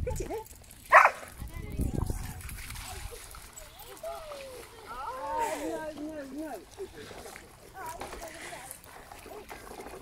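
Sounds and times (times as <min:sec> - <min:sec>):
dog splashing through water: 0:00.2 - 0:10.0
dog barking: 0:00.9 - 0:01.2.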